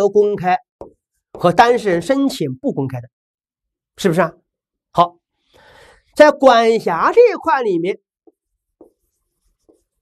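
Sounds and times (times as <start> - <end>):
pen writing on a board: 0.8 - 1.8, 8.2 - 10.0.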